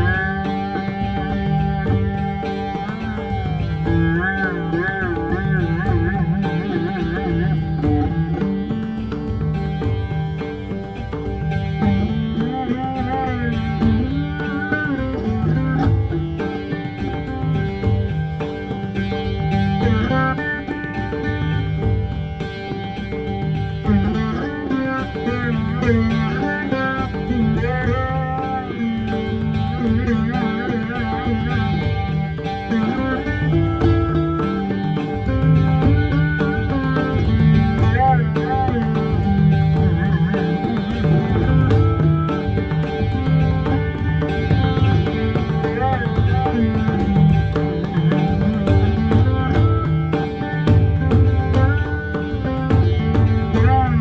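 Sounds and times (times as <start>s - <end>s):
plucked string instrument gliding: 0.0s - 54.0s.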